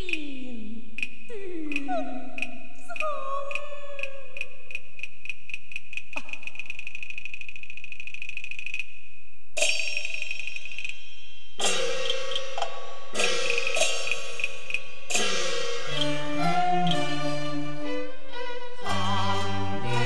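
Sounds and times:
opera percussion strikes: 11.6 - 17.9
pitched instrument notes: 11.6 - 20.0.

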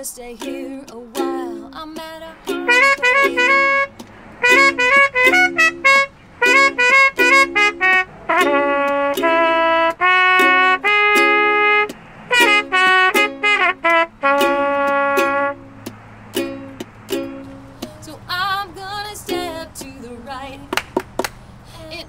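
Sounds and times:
trumpet-like melody: 2.5 - 15.8.

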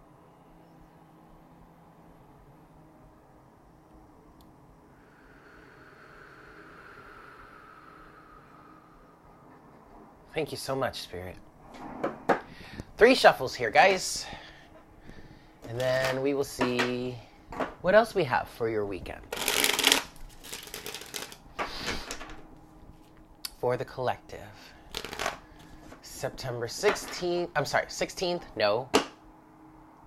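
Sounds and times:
faint background hiss with hum: 0.0 - 30.0
cards being shuffled: 19.3 - 22.4, 24.9 - 26.1.

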